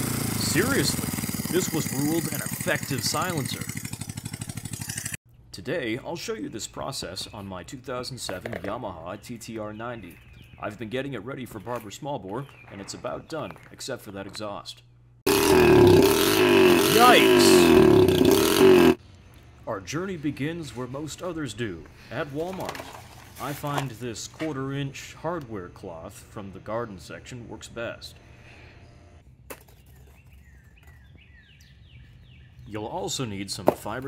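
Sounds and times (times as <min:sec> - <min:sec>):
motorcycle engine running loud: 0:00.0 - 0:05.2, 0:15.3 - 0:19.0
birds chirping: 0:06.0 - 0:14.9, 0:25.5 - 0:33.6.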